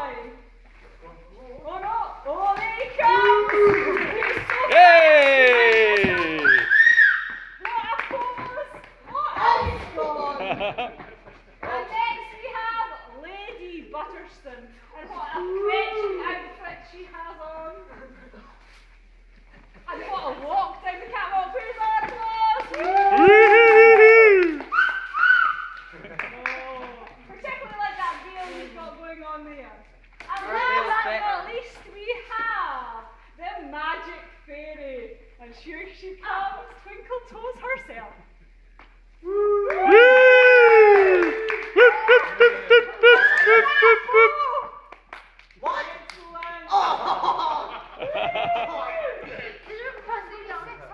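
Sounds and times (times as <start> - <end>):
high-pitched whoops: 3.0 - 7.4, 22.7 - 25.8, 39.2 - 44.7
long ooh cry: 4.7 - 7.2, 22.8 - 25.7, 39.2 - 44.7
spectators laughing loudly: 41.4 - 44.6, 46.7 - 49.6.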